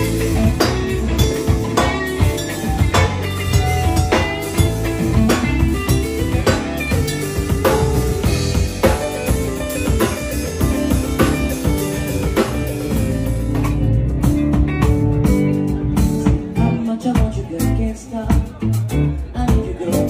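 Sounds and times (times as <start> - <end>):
bass guitar: 0.0 - 20.0
drum kit beat: 0.0 - 20.0
electric guitar: 0.0 - 20.0
keyboard: 0.0 - 20.0.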